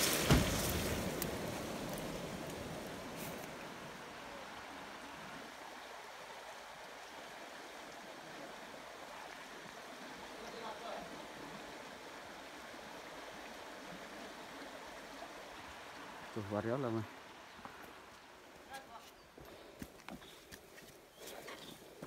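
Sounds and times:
river rushing over boulders: 0.0s - 18.7s.

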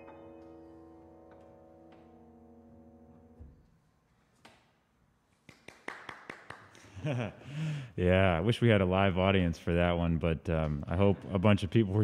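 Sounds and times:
grand piano chord ringing: 0.0s - 3.8s.

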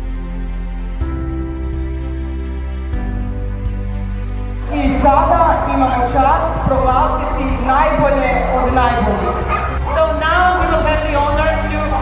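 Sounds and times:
dogs yipping and whining: 9.2s - 9.9s.

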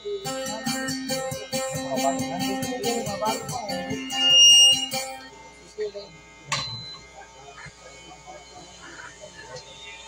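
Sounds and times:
live acoustic guitar music: 0.2s - 5.2s.

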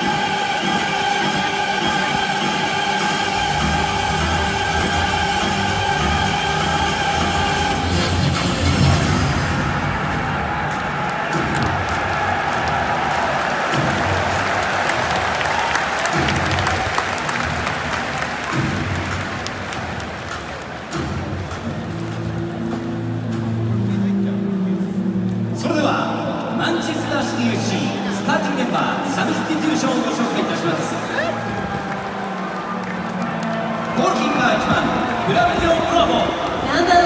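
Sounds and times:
stadium crowd applauding and cheering: 0.0s - 24.1s, 26.1s - 37.0s
stadium music over loudspeakers: 0.0s - 37.0s.

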